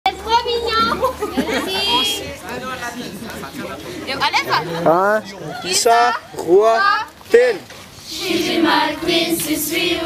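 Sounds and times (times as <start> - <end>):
young people calling out: 0.2 - 2.4, 3.8 - 10.0.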